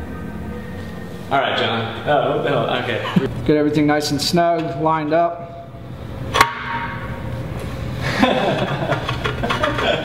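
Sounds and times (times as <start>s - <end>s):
laughter: 8.0s - 10.0s.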